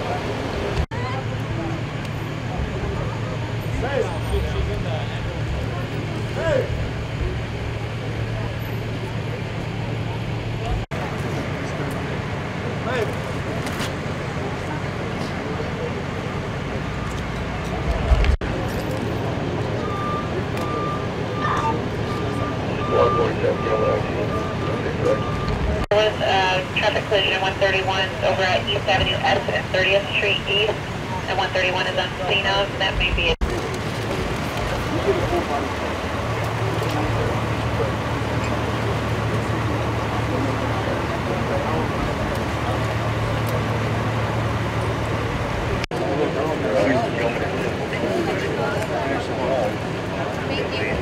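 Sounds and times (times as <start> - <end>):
low engine rumble: 0.0 - 51.0
street noise: 0.0 - 51.0
indistinct voices: 14.3 - 51.0
vehicle backup alarm beeping: 19.3 - 33.4.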